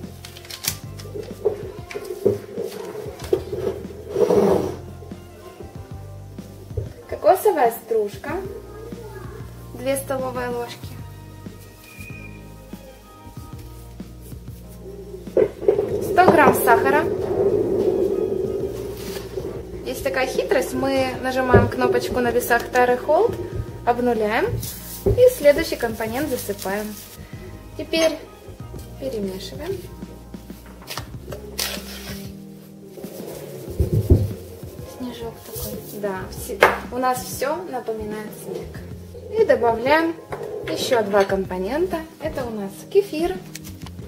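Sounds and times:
music with sustained notes: 0.0 - 44.0
low bump: 14.8 - 26.2, 33.0 - 35.5.

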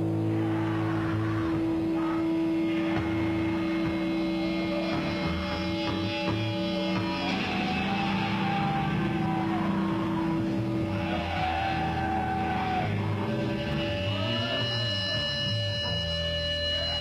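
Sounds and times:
distorted electric guitar: 0.0 - 17.0
steady held notes: 0.0 - 17.0.

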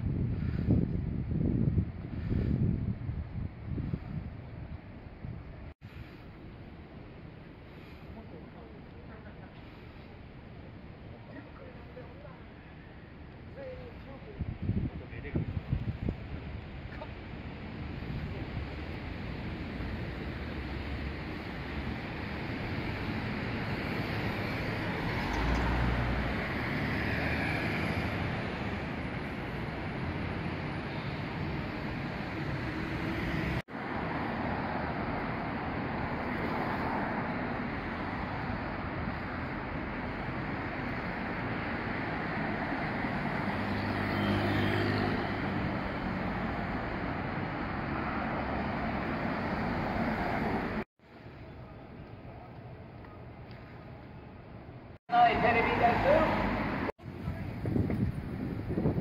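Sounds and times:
road traffic: 0.0 - 59.0
vehicle passing close by: 23.1 - 29.5, 31.9 - 50.8, 55.3 - 56.9.

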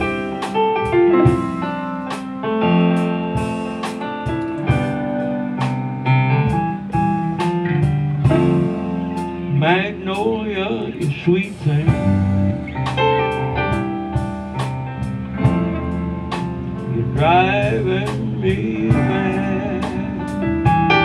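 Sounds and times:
electric guitars: 0.0 - 21.0
live blues-rock band: 0.0 - 21.0
piano: 0.0 - 21.0.

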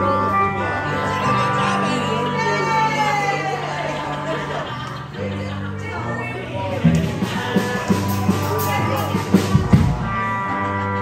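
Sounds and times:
live band music: 0.0 - 11.0
steady bass line: 0.0 - 11.0.

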